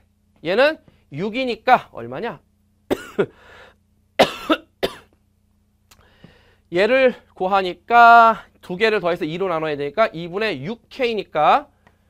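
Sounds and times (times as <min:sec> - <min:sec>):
man coughing: 0:02.9 - 0:03.4, 0:04.2 - 0:05.2.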